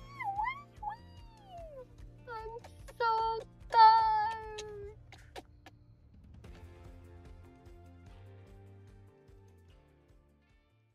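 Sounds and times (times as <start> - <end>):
woman vocalising high-pitched: 0.0 - 5.0.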